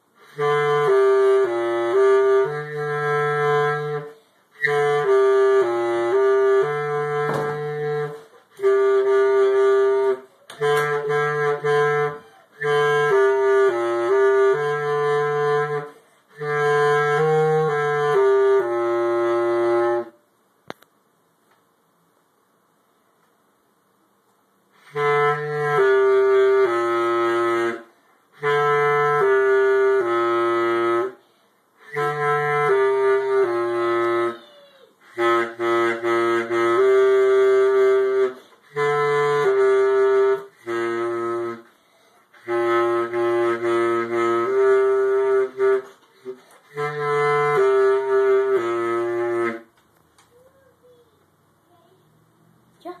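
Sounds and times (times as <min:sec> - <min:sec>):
bass clarinet melody: 0:00.0 - 0:20.2, 0:24.7 - 0:31.2, 0:31.8 - 0:51.2
player breathing: 0:41.7 - 0:42.4.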